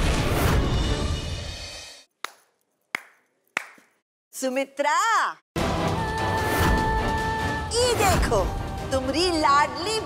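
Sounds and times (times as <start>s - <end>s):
slow hand claps: 2.2s - 4.0s.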